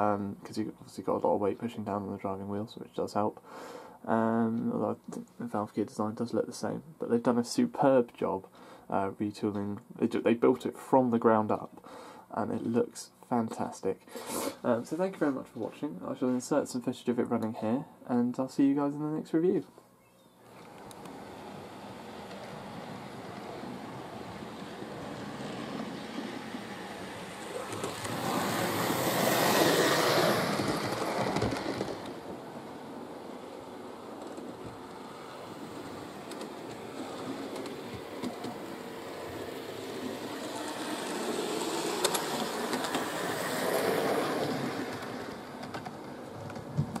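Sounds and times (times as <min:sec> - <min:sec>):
model train rumbling on rails: 0:20.5 - 0:47.0.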